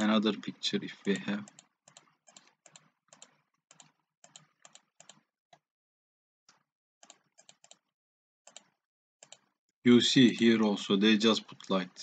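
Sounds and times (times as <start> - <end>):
computer mouse clicking: 1.0 - 5.7, 6.5 - 7.9, 8.5 - 9.6.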